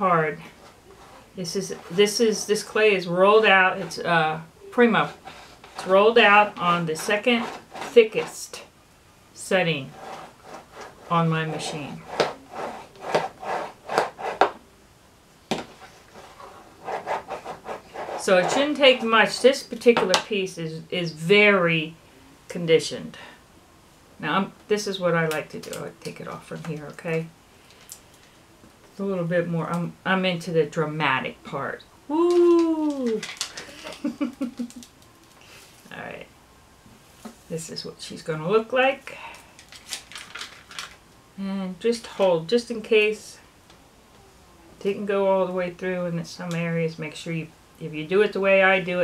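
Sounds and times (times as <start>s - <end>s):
plastic block scraping over clay cutter: 6.6s - 8.4s, 9.8s - 14.6s, 15.7s - 19.4s
woman laughing: 33.7s - 34.9s.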